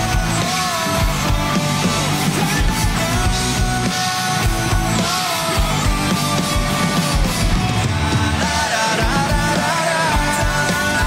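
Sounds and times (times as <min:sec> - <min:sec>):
electric guitars bending notes: 0:00.0 - 0:11.0
live rock band: 0:00.0 - 0:11.0
steady drum beat: 0:00.0 - 0:11.0.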